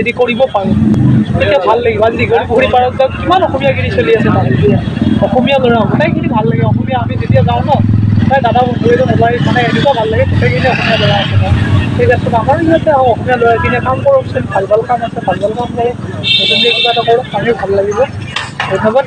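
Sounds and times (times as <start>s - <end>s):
man talking: 0.0s - 19.0s
road traffic rumble: 0.0s - 19.0s.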